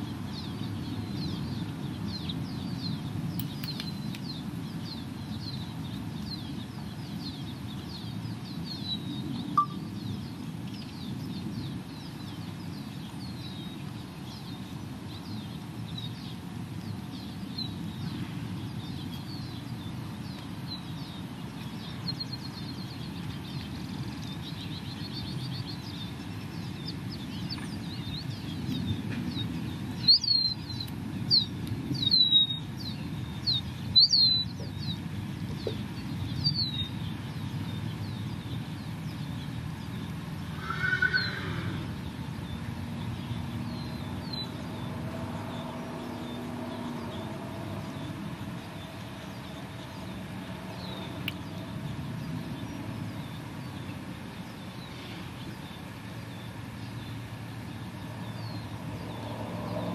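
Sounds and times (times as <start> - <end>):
low outdoor rumble: 0.0 - 59.9
small birds chirping: 0.0 - 59.9.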